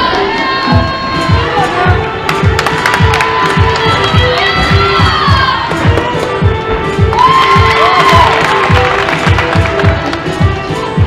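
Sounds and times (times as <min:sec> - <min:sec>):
crowd cheering and shouting: 0:00.0 - 0:02.0, 0:02.8 - 0:05.7, 0:07.1 - 0:08.9
music with steady beat: 0:00.7 - 0:11.0.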